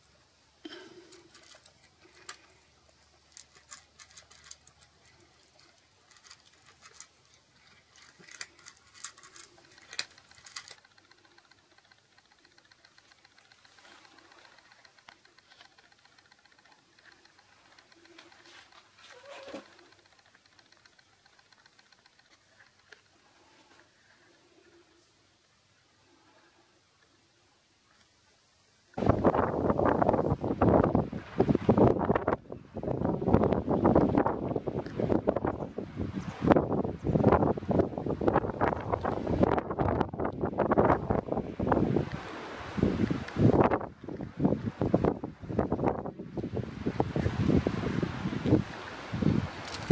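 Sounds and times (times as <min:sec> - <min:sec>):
faint ticks: 0:00.6 - 0:30.4, 0:32.2 - 0:35.5, 0:41.9 - 0:46.6, 0:47.4 - 0:49.9
gusty wind buffeting microphone: 0:29.0 - 0:49.9.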